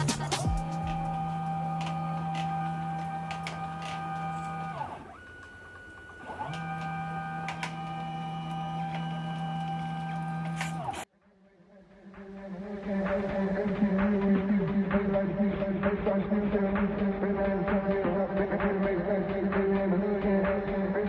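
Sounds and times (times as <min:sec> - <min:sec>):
stepper motors whining: 0:00.0 - 0:11.1.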